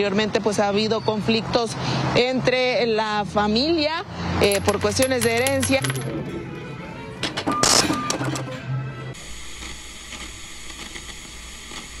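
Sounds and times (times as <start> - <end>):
faint crackles: 9.4 - 12.0.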